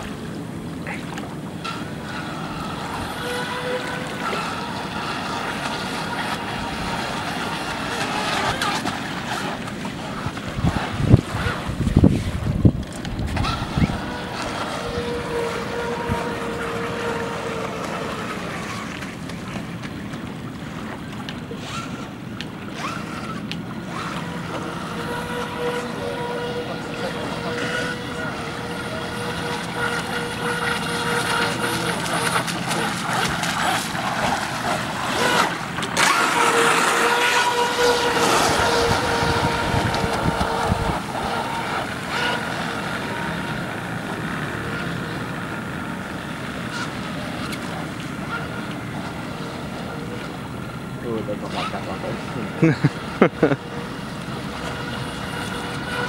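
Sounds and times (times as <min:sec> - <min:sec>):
electric motor whining: 0:01.5 - 0:19.1, 0:21.6 - 0:56.0.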